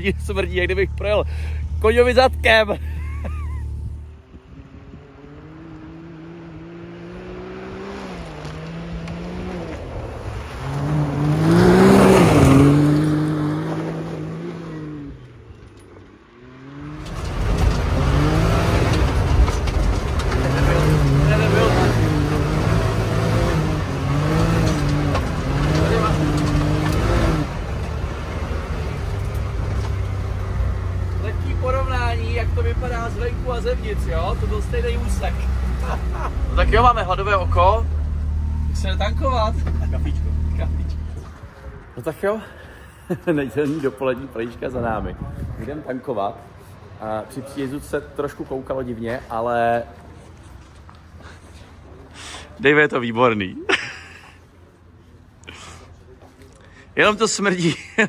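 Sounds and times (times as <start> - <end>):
side-by-side engine revving: 0.0 - 15.5, 16.2 - 41.4.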